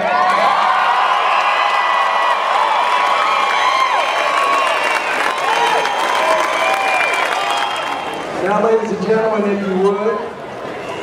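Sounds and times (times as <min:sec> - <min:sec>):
crowd cheering and whooping: 0:00.0 - 0:08.4.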